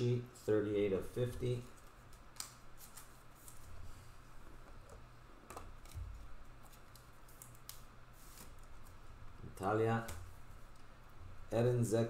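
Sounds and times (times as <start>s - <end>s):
faint low hum: 0.0s - 12.0s
cards being shuffled: 1.6s - 3.8s.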